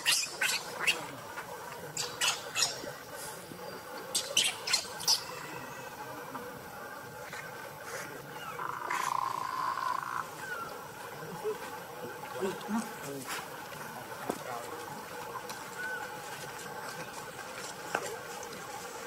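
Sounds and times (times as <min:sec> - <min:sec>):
baby monkey squeaking: 0:00.0 - 0:01.0, 0:02.0 - 0:02.8, 0:04.1 - 0:05.4
baby monkey calling: 0:00.0 - 0:01.1, 0:02.0 - 0:02.9, 0:04.1 - 0:05.8, 0:08.4 - 0:10.8.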